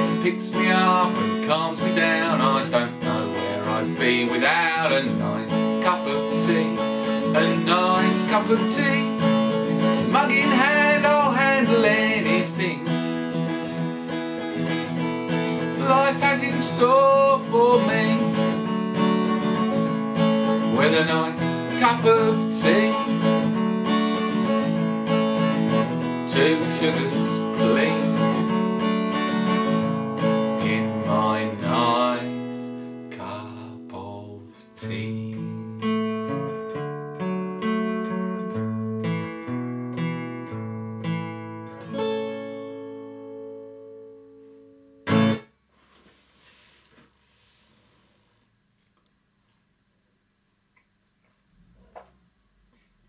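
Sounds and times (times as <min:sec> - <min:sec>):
acoustic guitar strumming: 0:00.0 - 0:45.6.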